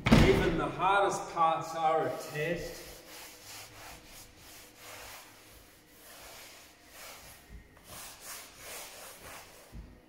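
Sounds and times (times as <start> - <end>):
cloth scrubbing upholstery: 2.1 - 10.0.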